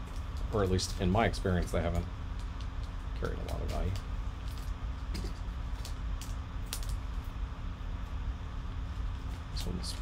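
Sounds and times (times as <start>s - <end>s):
foil pack crinkling: 0.0s - 7.0s
steady low hum: 0.0s - 10.0s.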